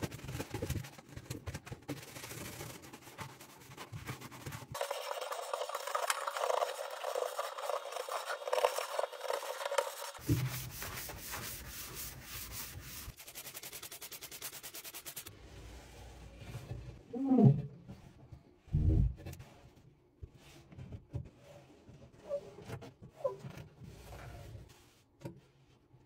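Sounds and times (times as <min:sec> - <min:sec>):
scrubbing pad rubbing oven enamel: 0:04.1 - 0:15.3
cloth wiping oven walls: 0:06.4 - 0:18.2.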